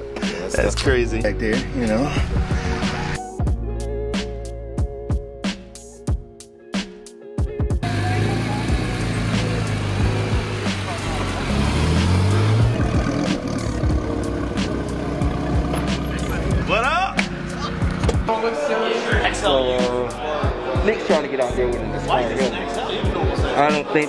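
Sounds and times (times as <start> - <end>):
music: 0.0 - 24.0
car engine revving: 7.8 - 18.3.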